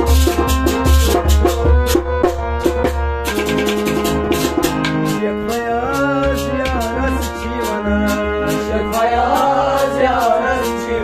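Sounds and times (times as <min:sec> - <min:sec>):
drum and percussion strokes: 0:00.0 - 0:10.8
harmonium chords: 0:00.0 - 0:11.0
man singing: 0:05.1 - 0:11.0.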